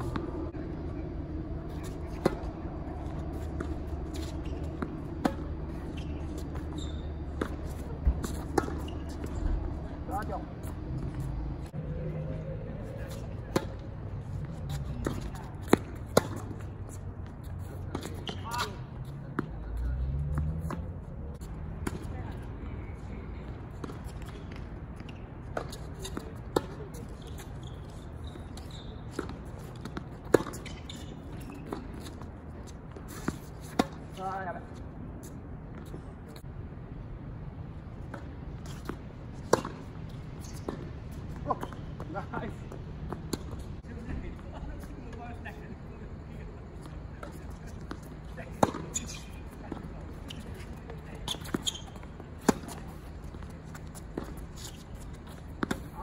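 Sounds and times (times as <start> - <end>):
tennis balls struck and bouncing: 0.0 - 11.8, 13.1 - 19.6, 20.2 - 22.4, 28.5 - 34.3, 38.0 - 44.5, 46.7 - 56.0.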